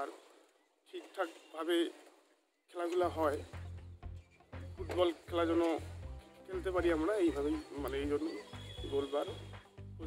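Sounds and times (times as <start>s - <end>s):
background music with low beat: 3.0s - 10.0s.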